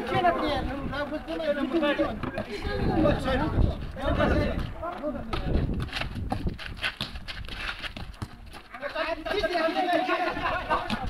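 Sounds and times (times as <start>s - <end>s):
person laughing in bursts: 10.1s - 11.0s.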